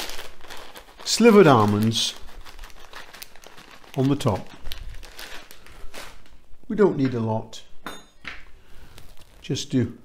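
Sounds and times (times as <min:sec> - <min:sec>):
plastic packet crinkling: 0:00.0 - 0:06.4, 0:08.8 - 0:09.6.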